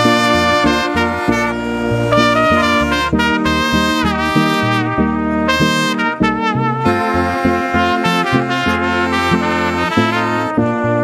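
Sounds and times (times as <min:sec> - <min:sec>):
bass line: 0:00.0 - 0:11.0
brass melody: 0:00.0 - 0:11.0.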